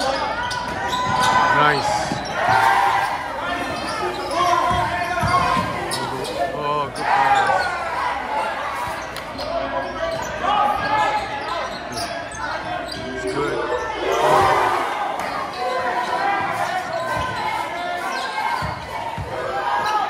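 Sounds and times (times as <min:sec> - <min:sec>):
basketball bouncing on wooden floor: 0:04.6 - 0:05.9.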